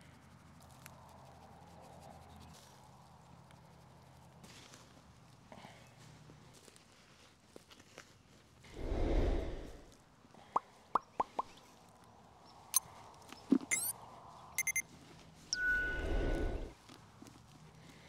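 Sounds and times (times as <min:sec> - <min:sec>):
rush of noise: 0:08.8 - 0:09.9, 0:15.6 - 0:16.7
quick pops: 0:11.0 - 0:11.6
sharp clicks: 0:13.5 - 0:13.9, 0:14.6 - 0:14.8
bell-like ring: 0:15.6 - 0:16.1.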